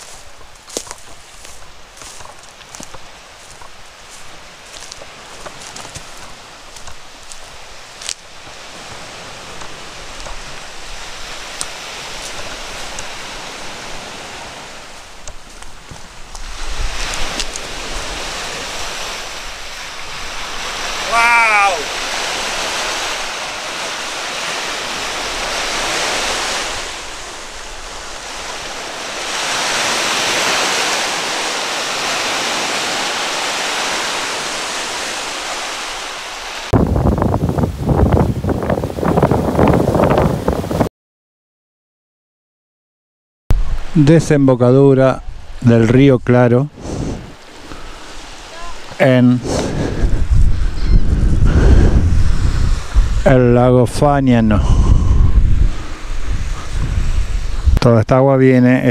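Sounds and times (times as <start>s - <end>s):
wind buffeting microphone: 0.0s - 21.0s, 36.7s - 40.9s, 46.7s - 57.8s
waves washing on sand shore: 0.0s - 40.9s, 43.5s - 57.8s
wind: 0.0s - 40.9s, 43.5s - 58.9s.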